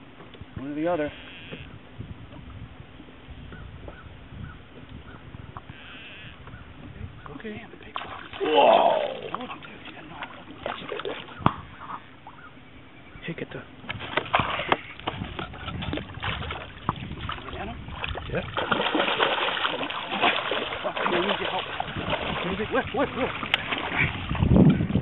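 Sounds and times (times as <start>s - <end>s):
fish thrashing and splashing: 7.9s - 11.4s, 13.9s - 24.6s.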